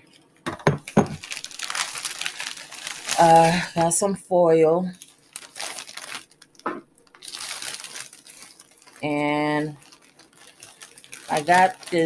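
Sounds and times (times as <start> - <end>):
plastic packaging crinkling: 0.1 - 4.1, 4.9 - 12.0.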